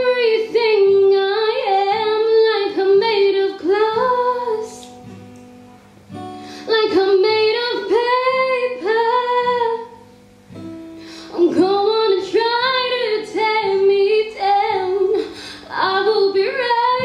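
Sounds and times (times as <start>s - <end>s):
woman singing: 0.0s - 5.0s, 6.6s - 10.0s, 11.2s - 17.0s
acoustic guitar: 0.0s - 17.0s.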